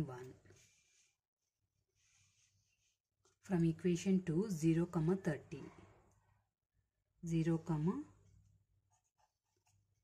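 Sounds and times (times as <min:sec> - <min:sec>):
pencil scratching on paper: 0:08.7 - 0:10.0.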